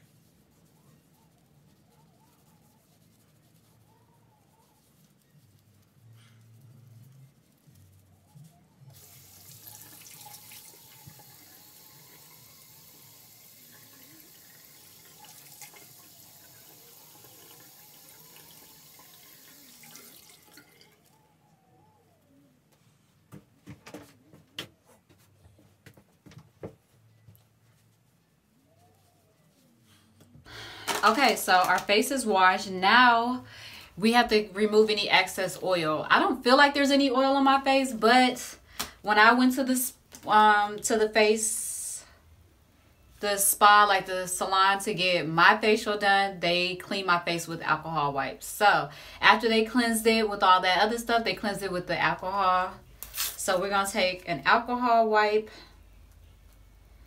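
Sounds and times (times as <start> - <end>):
sink tap running: 9.0 - 20.8.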